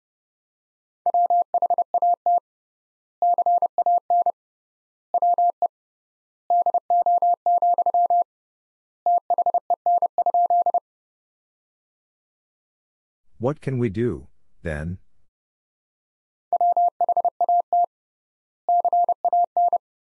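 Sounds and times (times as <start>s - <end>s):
morse code beeps: 5.2s - 5.6s, 6.5s - 8.2s, 9.1s - 10.8s, 16.6s - 17.9s, 18.7s - 19.8s.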